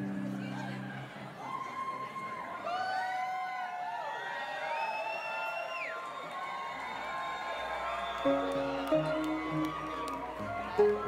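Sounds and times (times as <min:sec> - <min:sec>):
audience cheering: 0:00.8 - 0:11.0
long whoops: 0:01.4 - 0:11.0.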